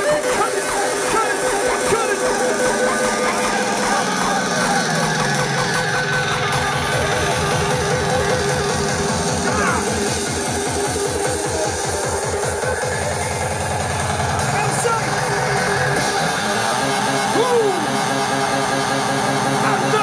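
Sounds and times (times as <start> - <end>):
fast kick-drum beat: 0.0 - 16.0
crowd voices and shouts: 0.0 - 20.0
hardstyle dance music: 0.0 - 20.0.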